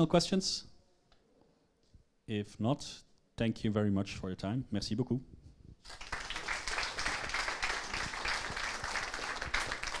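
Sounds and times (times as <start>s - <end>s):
audience applauding: 5.9s - 10.0s.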